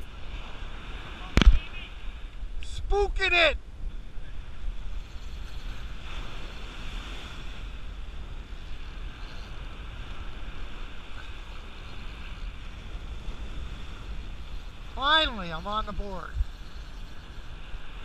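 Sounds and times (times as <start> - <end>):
ocean waves breaking on beach: 0.0 - 18.0
wind rumbling on microphone: 0.0 - 18.0.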